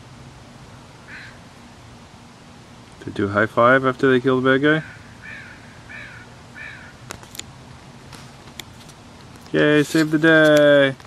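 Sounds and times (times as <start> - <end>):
crow cawing: 1.0 - 1.4, 4.8 - 7.0.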